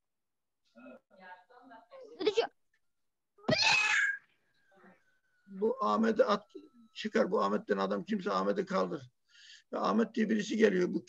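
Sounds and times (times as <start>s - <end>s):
cat-like cry: 3.4s - 4.3s.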